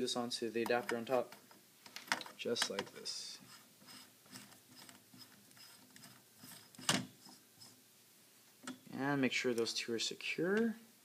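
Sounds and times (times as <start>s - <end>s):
faint scraping and ticking: 0.6s - 7.8s.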